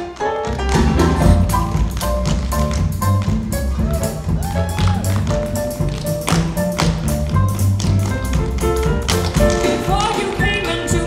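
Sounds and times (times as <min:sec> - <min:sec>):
pop backing music: 0:00.0 - 0:11.0
tap shoes striking stage floor: 0:00.0 - 0:11.0.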